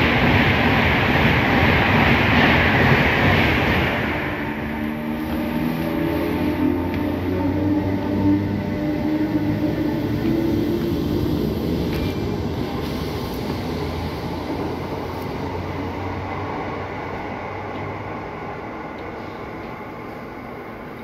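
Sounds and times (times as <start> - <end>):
electric train pulling away: 0.0 - 21.0.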